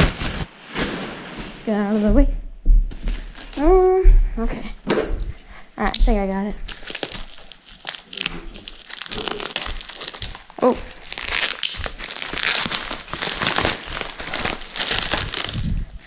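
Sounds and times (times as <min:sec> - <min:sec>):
plastic wrap crinkling: 0:03.0 - 0:03.8, 0:05.8 - 0:16.0.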